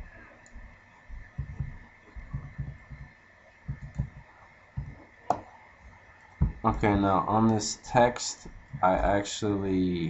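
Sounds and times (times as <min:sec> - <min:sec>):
faint steady hum: 0:00.0 - 0:10.0
computer mouse clicks: 0:03.7 - 0:05.4.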